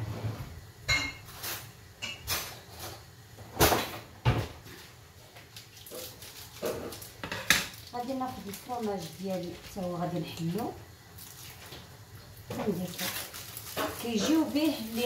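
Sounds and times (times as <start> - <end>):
dishes and utensils clinking: 0.9 - 3.0.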